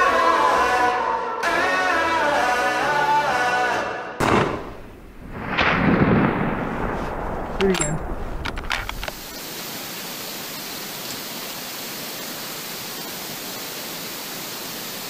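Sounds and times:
sharp cracks: 4.2 - 9.4
thunder-like boom and rumble: 4.2 - 9.4
outdoor recording hiss: 4.4 - 15.0.

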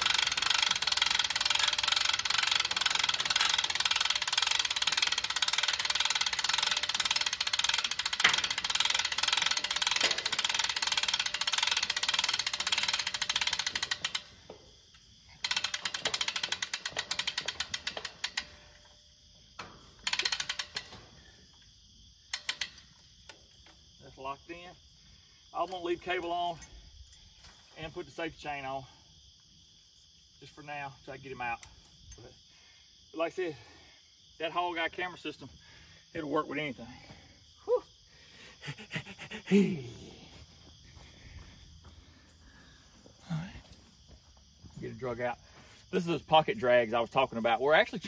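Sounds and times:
cable winch ratcheting: 0.0 - 24.8, 25.5 - 28.9.

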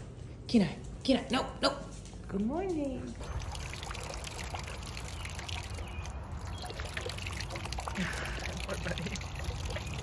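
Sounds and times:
water splashing from pump spout: 3.2 - 10.0.

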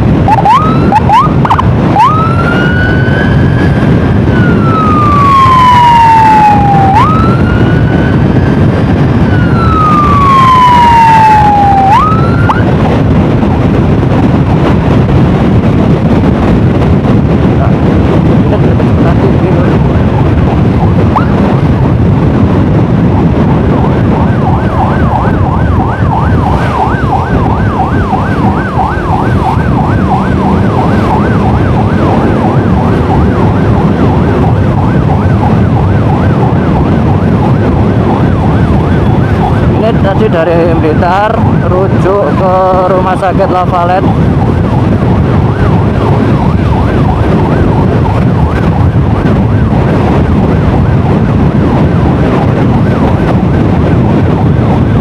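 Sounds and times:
emergency siren wailing: 0.0 - 55.0
road noise: 0.0 - 55.0
motorcycle engine: 23.6 - 39.7.

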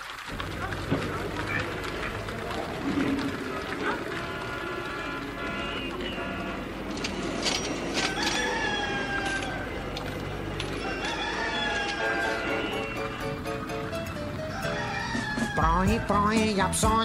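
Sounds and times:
rooster crowing: 7.9 - 13.4, 14.3 - 16.2
song playing: 11.9 - 17.0.

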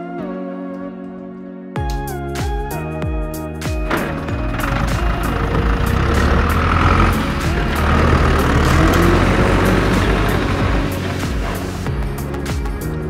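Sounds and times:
background music: 0.0 - 13.0
tractor engine running: 3.9 - 12.8.

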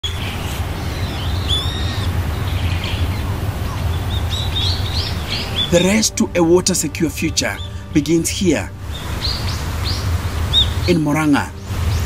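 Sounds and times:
birds chirping and whistling: 0.0 - 12.0
steady low rumble: 0.2 - 12.0.

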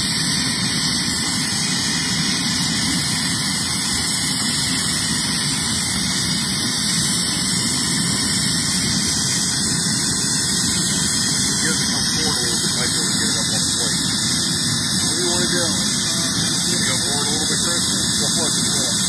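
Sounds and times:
steady hiss: 0.0 - 19.0.

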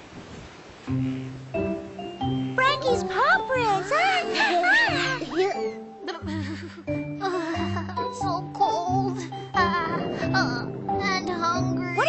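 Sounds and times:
gentle background music: 0.7 - 12.0.

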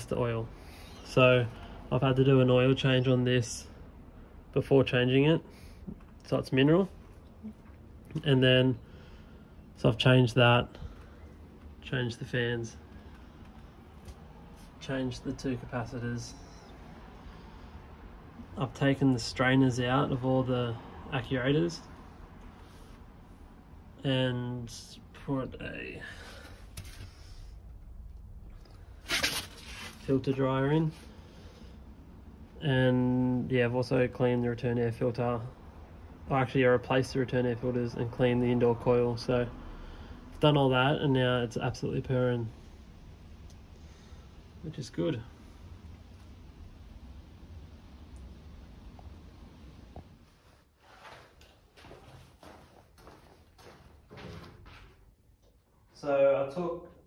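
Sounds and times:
soft knocks and scuffs: 49.9 - 55.1.

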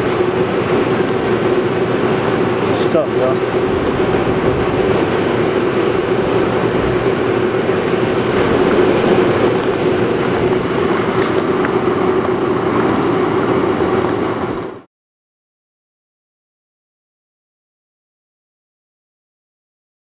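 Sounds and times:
loud mechanical drone: 0.0 - 14.9.

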